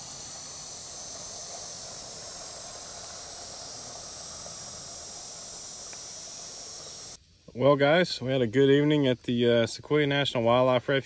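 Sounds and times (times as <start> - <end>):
insects buzzing: 0.0 - 7.5
outdoor background hiss: 0.0 - 11.0.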